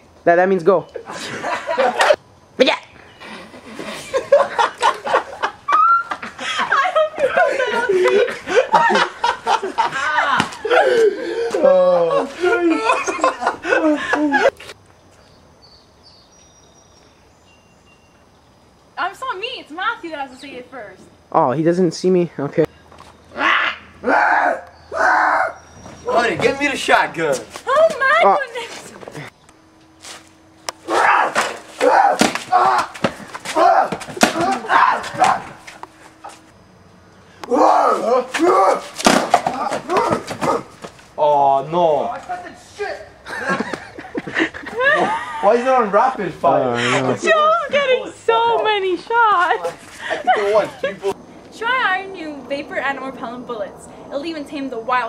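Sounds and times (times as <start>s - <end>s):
outdoor background noise: 0.0s - 55.0s
person laughing and talking: 3.3s - 14.7s, 43.2s - 47.5s, 49.4s - 51.2s
faint high chirps: 15.1s - 18.7s.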